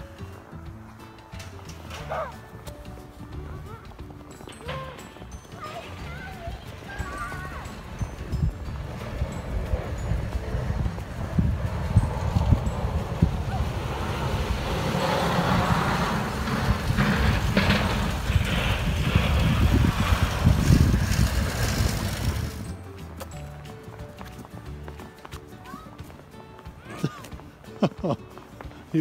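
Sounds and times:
wind rumbling on microphone: 0:05.3 - 0:23.0.

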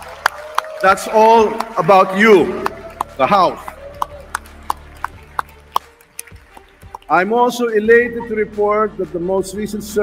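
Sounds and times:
sparse clapping: 0:00.0 - 0:07.1
sharp handclaps: 0:00.0 - 0:07.2.

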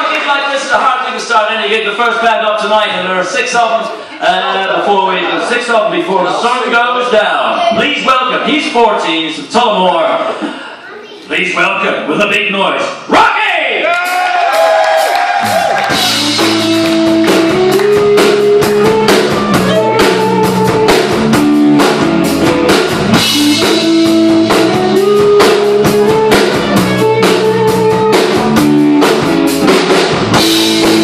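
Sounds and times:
rock band playing: 0:14.0 - 0:31.0.

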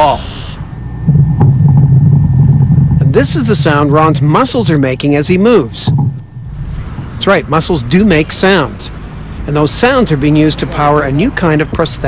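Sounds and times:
low muscle rumble: 0:00.0 - 0:08.8.

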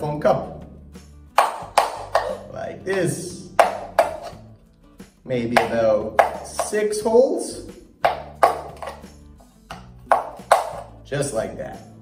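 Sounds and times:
background music: 0:00.0 - 0:12.0
pencil popping through foam cup: 0:01.4 - 0:04.4, 0:08.0 - 0:10.9.

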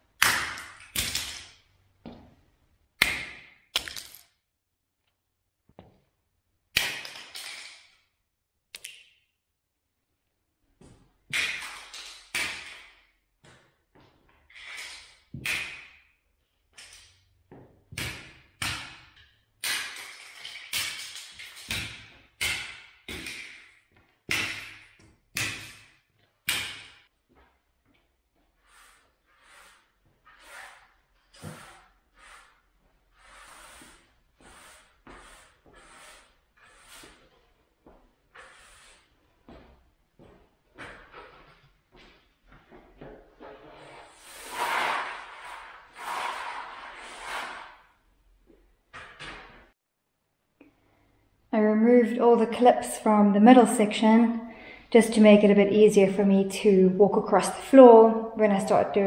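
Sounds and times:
broom sweeping: 0:28.6 - 0:37.3, 0:38.4 - 0:39.2, 0:43.4 - 0:47.8.

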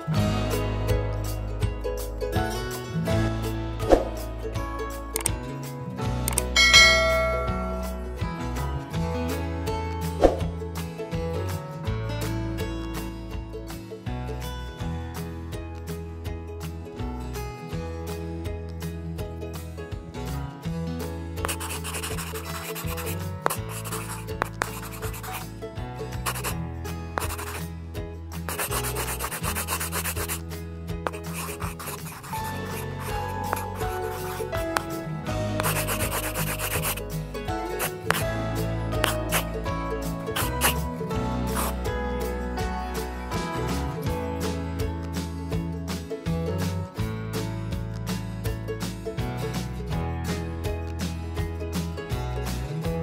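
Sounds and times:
background music: 0:00.0 - 0:53.0
bell chime: 0:06.5 - 0:08.1
marker rubbing on paper: 0:21.4 - 0:25.5, 0:26.2 - 0:26.6, 0:27.2 - 0:27.6, 0:28.4 - 0:30.4, 0:31.0 - 0:34.9, 0:35.6 - 0:37.1, 0:37.7 - 0:38.3, 0:39.0 - 0:39.5, 0:40.3 - 0:40.9, 0:41.5 - 0:41.8.

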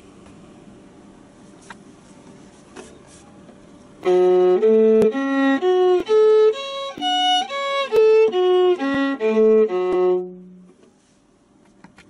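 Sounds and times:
low room hum: 0:00.0 - 0:12.0
soft rubbing scrapes: 0:01.4 - 0:03.4, 0:10.9 - 0:11.3.

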